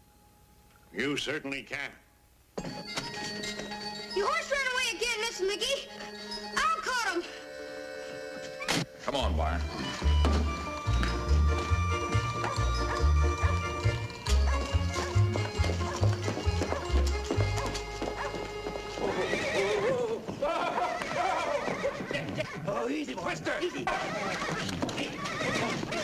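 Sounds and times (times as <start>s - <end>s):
film score with bouncing bass: 9.3s - 17.8s
hooves striking ground: 9.6s - 26.0s
horse whinnying: 11.5s - 22.5s, 23.9s - 26.0s.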